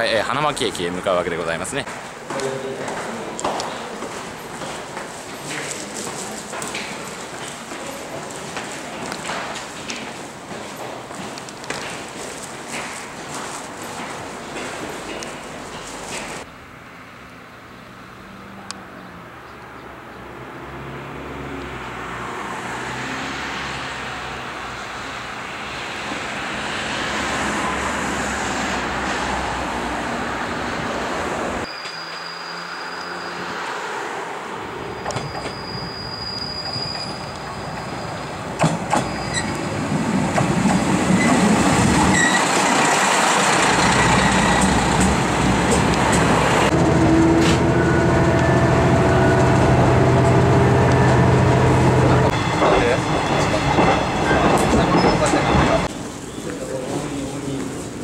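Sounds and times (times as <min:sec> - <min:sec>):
diesel railcar engine and wheels: 0:00.0 - 0:16.7, 0:21.8 - 0:58.0
thin high squeal: 0:31.7 - 0:33.5, 0:34.9 - 0:38.2.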